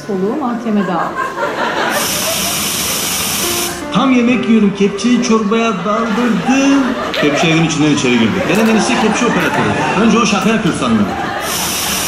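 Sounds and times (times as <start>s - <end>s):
television static hiss: 0.0s - 12.0s.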